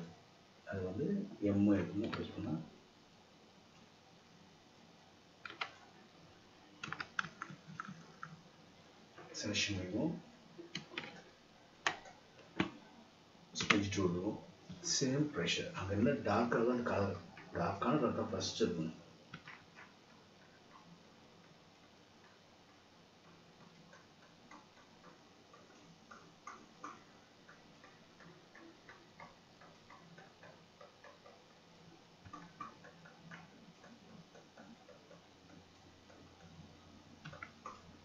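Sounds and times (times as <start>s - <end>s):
computer mouse clicking: 1.8s - 2.6s, 5.4s - 5.9s, 6.8s - 8.4s, 10.6s - 12.8s, 13.6s - 13.9s, 19.3s - 38.0s.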